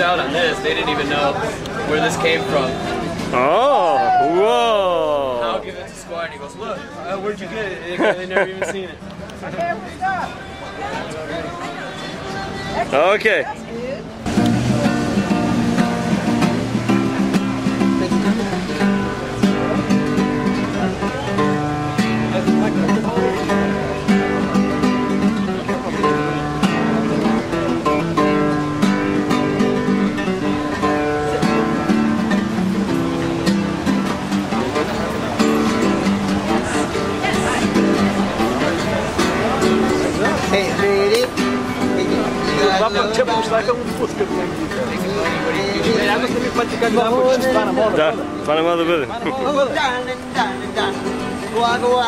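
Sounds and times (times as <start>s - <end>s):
acoustic guitar playing: 0.0s - 52.0s.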